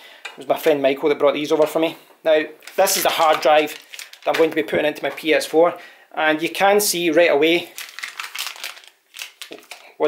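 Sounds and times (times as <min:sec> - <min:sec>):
plastic bag crinkling: 0:02.6 - 0:05.2, 0:07.6 - 0:10.0.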